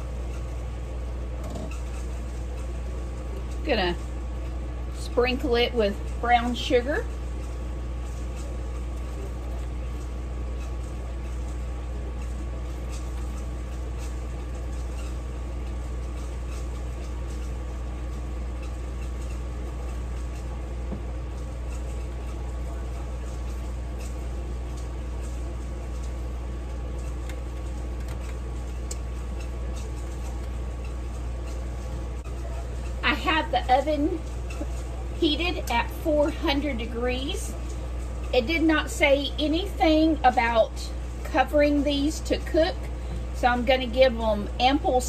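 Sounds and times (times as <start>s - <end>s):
kitchen appliance hum and whine: 0.0s - 45.0s.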